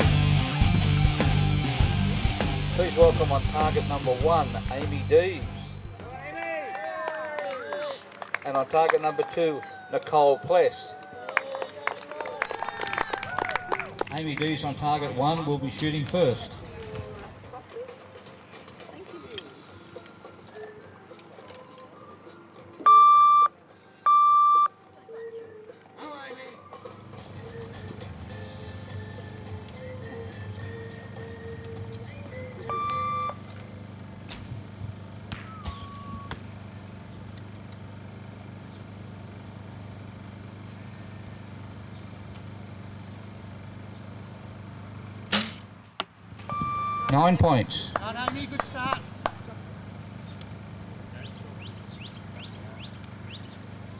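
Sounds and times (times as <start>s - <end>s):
electronic beeps through speaker: 22.8s - 24.8s, 32.6s - 33.4s, 46.5s - 47.4s
sharp crack: 45.3s - 46.2s.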